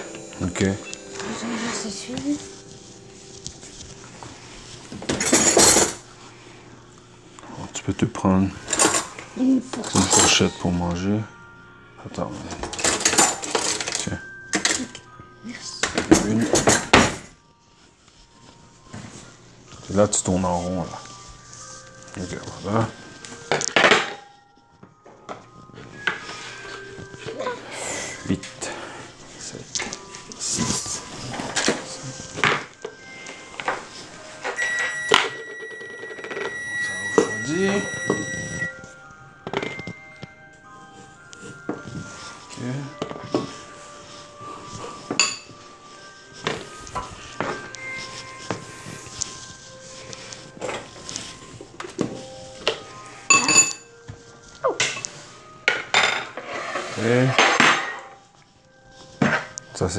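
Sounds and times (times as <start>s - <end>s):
dishes and utensils clattering: 0.0s - 6.3s, 7.5s - 10.8s, 12.2s - 15.1s, 15.8s - 17.4s, 22.1s - 37.4s, 38.0s - 59.9s.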